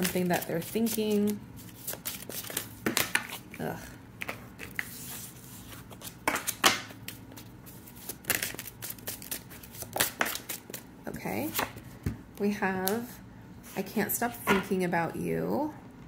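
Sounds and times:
cards being shuffled by hand: 0.0 - 10.8.

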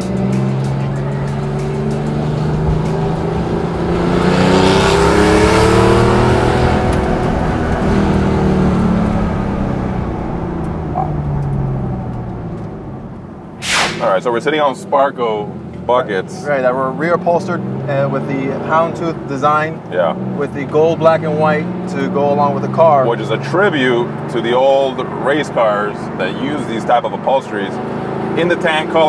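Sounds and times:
sports car engine accelerating: 0.0 - 14.9, 15.5 - 29.0.

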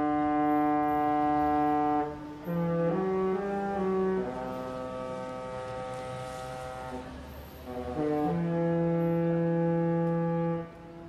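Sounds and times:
ship's horn playing chord notes: 0.0 - 11.0.

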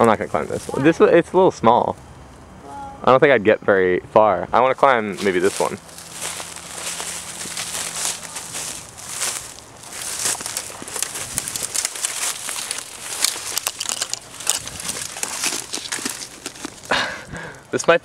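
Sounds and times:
dry leaves rustling: 0.0 - 1.0, 4.9 - 17.6
twigs crackling and snapping: 5.1 - 17.6.

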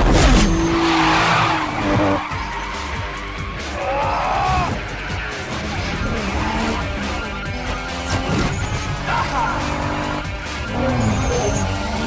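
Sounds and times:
film music: 0.0 - 12.0
sports car engines revving: 0.0 - 12.0.

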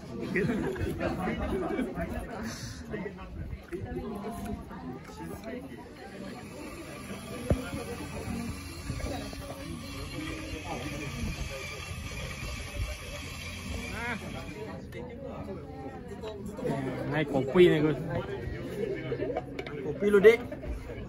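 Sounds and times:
chatter of voices: 0.0 - 21.0.

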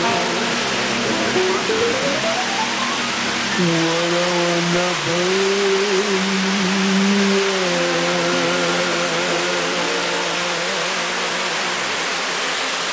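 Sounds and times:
sustained background music note: 0.0 - 3.5
river rapids rushing: 0.0 - 12.9.

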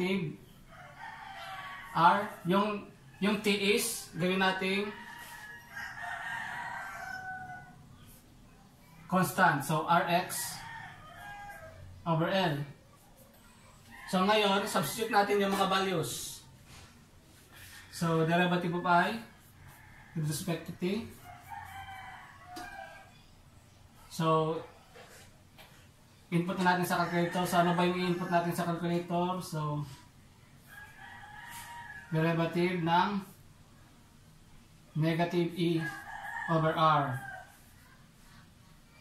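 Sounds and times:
rooster crowing: 0.5 - 8.2, 10.1 - 12.6, 13.4 - 16.0, 17.5 - 23.4, 26.4 - 29.9, 30.6 - 32.6, 35.7 - 38.0.

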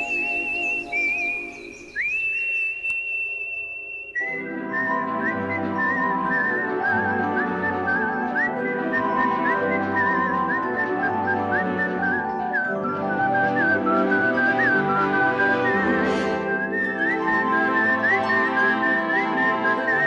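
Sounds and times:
instrumental backing music: 0.0 - 2.2, 4.2 - 20.0
person whistling a tune: 0.0 - 20.0.

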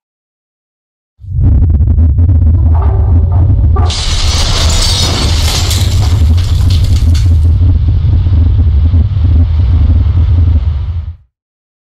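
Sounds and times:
deep steady rumble: 1.2 - 11.3
stone shattering and debris scattering: 3.9 - 7.6.

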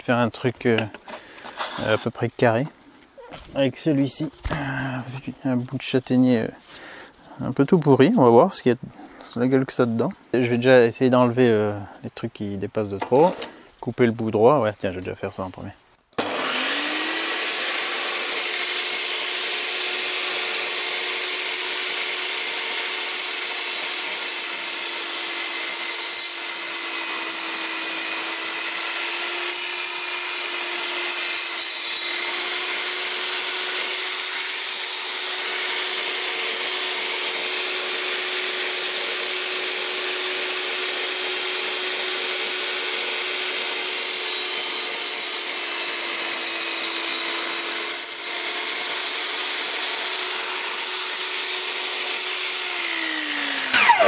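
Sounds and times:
table saw cutting log: 0.7 - 2.1, 16.2 - 54.0
saw blade spinning down: 16.2 - 24.2, 49.2 - 54.0.

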